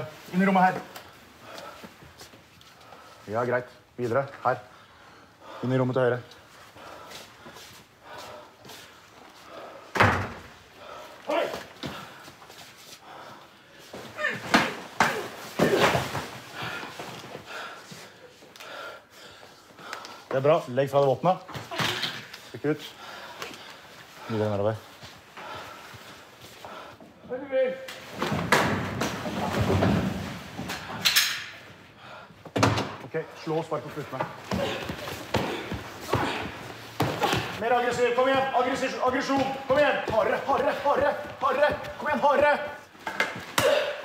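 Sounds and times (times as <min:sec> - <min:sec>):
bangs and thumps: 0:28.1 - 0:31.4.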